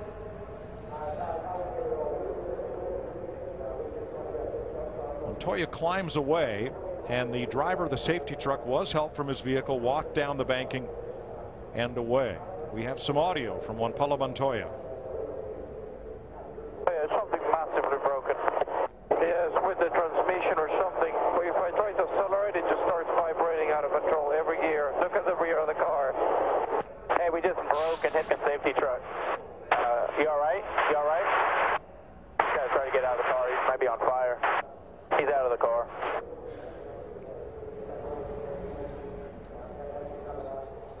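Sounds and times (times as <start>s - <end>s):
speech over two-way radio: 16.9s - 31.8s, 32.4s - 36.2s.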